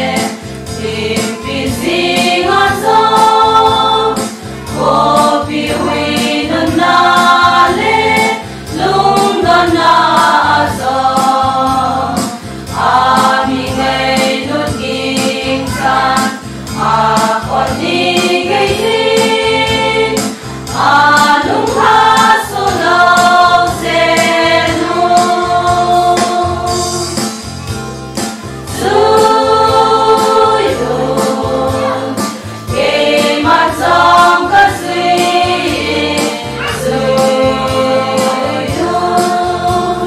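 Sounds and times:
women's choir singing a hymn: 0.0 - 27.1, 28.7 - 40.0
accompaniment with steady beat: 0.0 - 40.0.

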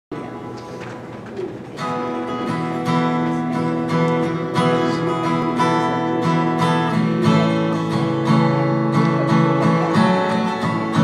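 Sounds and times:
acoustic guitar: 0.1 - 11.0.

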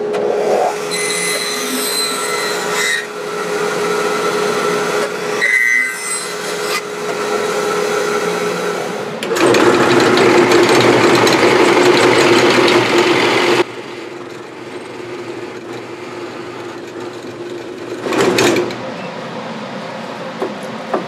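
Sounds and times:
bandsaw running: 0.2 - 18.9
drill press boring into wood: 9.2 - 13.6.

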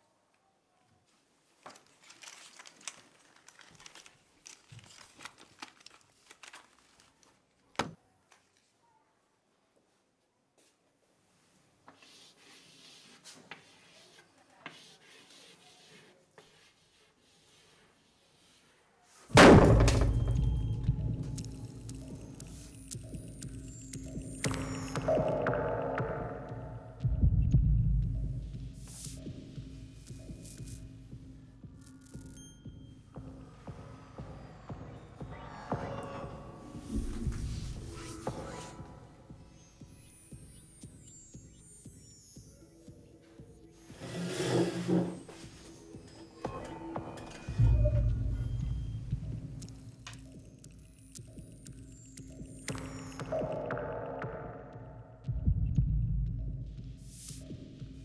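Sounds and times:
chalk scratching on blackboard: 11.9 - 18.9.

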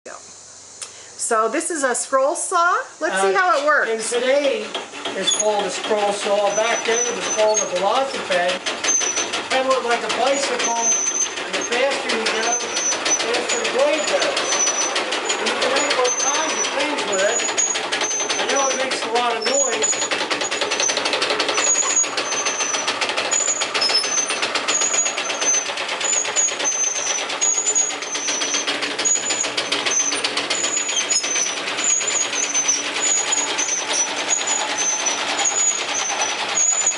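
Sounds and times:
scroll saw cutting wood: 3.0 - 36.9.

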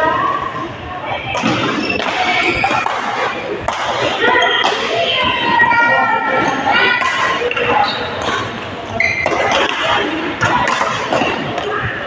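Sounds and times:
people talking: 0.0 - 12.0
shoes squeaking on court floor: 1.4 - 3.2, 7.5 - 10.1
racket hitting shuttlecock: 1.4 - 4.8, 9.2 - 11.8.

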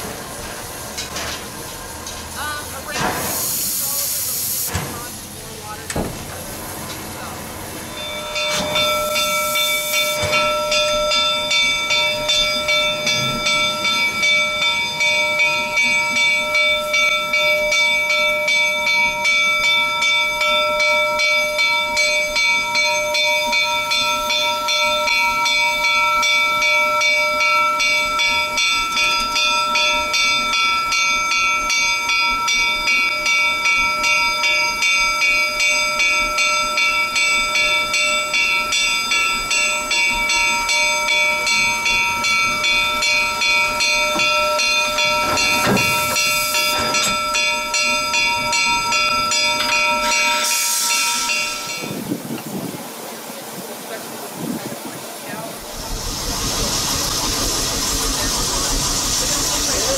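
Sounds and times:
steam hissing: 0.0 - 20.4, 34.7 - 59.9
locomotive bell ringing: 0.0 - 52.7, 55.2 - 59.9.

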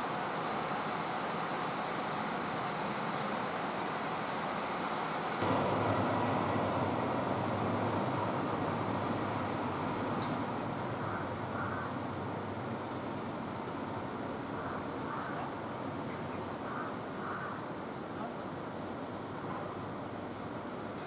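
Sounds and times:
high-pitched wheel squeal: 5.4 - 17.7
train rumbling: 5.4 - 18.6
traffic rumble: 5.4 - 21.0.

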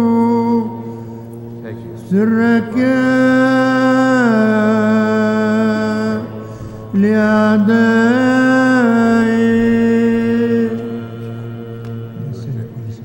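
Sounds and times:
low drone: 0.0 - 13.0
person chanting: 0.0 - 13.0.

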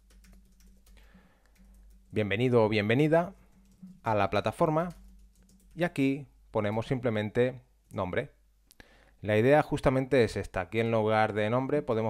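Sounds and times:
typing on computer keyboard: 0.0 - 2.2, 3.4 - 6.0.

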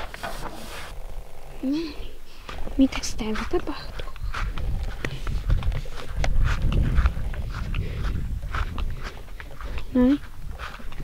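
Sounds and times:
rustling and knocking on grass: 0.0 - 1.0.

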